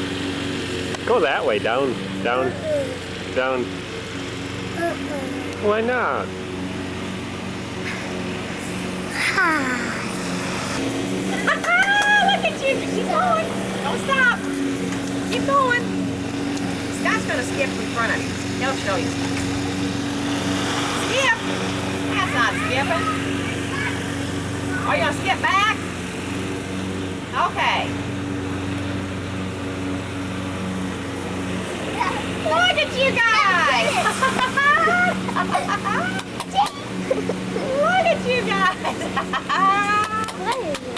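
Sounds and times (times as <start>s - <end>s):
low mechanical hum: 0.0s - 40.9s
child vocalising and squealing: 2.4s - 3.1s, 4.7s - 5.5s, 9.1s - 10.2s, 36.0s - 38.2s.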